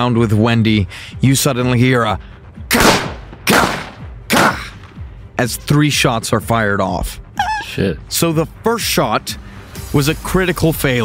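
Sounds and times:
gunshots with echo: 2.7s - 5.0s.

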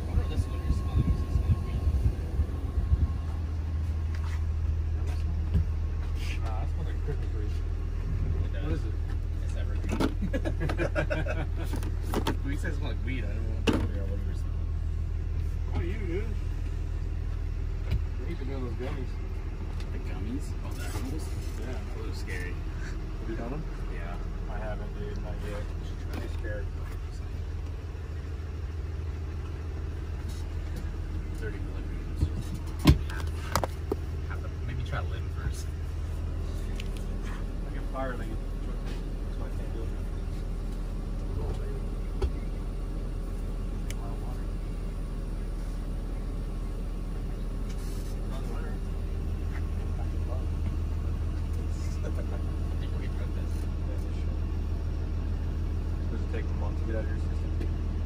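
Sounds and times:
low machine hum: 0.0s - 58.0s.

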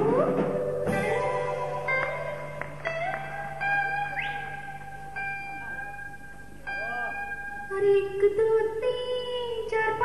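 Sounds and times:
live band music: 0.0s - 8.0s.

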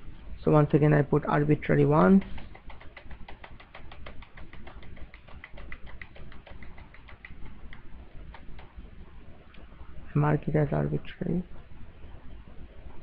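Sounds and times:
keyboard keystrokes typing: 2.2s - 8.7s.

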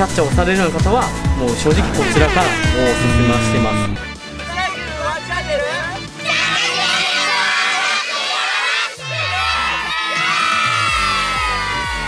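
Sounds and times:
children shouting together: 1.8s - 4.0s, 6.3s - 12.0s.

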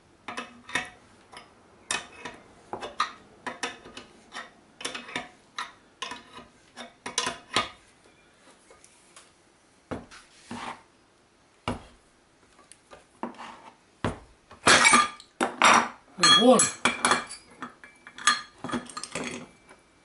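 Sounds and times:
steel clinks and knocks: 14.7s - 19.8s
metal rattling and clinking: 16.3s - 19.6s.

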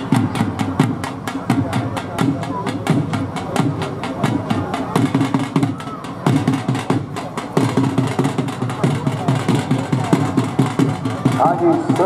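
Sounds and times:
drum beaten fast: 0.0s - 12.0s
voices: 0.0s - 12.0s.

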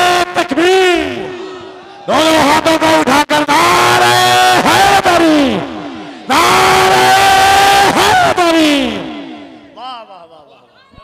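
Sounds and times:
man shouting over pa system: 0.0s - 10.5s.

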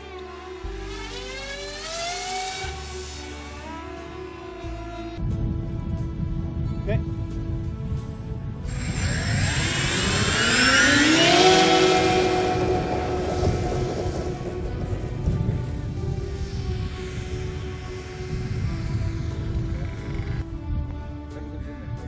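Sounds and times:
model plane propeller motors: 0.0s - 5.0s, 8.6s - 21.5s.

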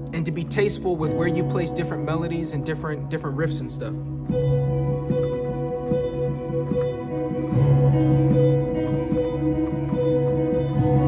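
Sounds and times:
piano notes: 0.0s - 11.0s.

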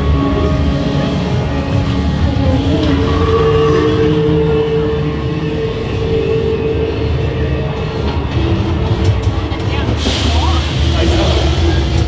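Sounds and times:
loud rumbling drone: 0.0s - 12.0s
steady held tone: 2.3s - 8.8s.

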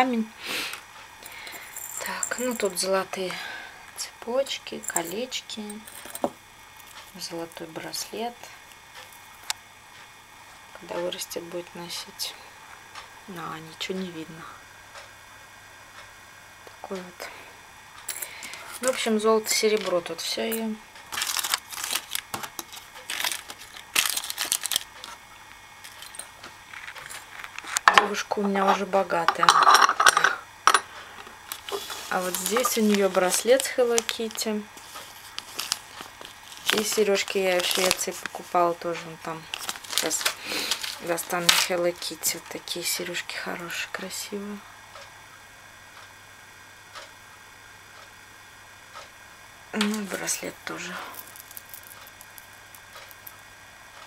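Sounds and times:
steady low hum and hiss: 0.0s - 54.0s
small handling clicks and rustles: 4.8s - 7.6s, 25.8s - 28.1s, 31.5s - 42.5s
paper card crinkling: 21.1s - 25.2s, 31.5s - 38.6s, 39.4s - 41.8s, 50.7s - 53.4s.

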